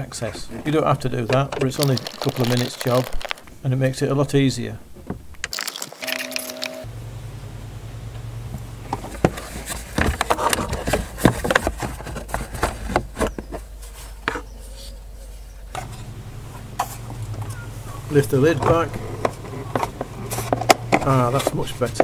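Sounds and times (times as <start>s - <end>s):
plastic parts clicking and scraping: 0.2s - 3.5s, 9.1s - 14.9s, 18.5s - 22.0s.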